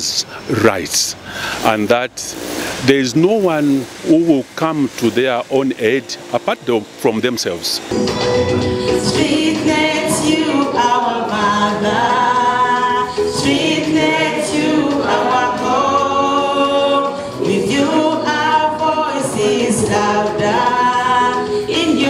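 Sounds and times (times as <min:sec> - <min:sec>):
group singing a cappella: 0:08.2 - 0:22.0.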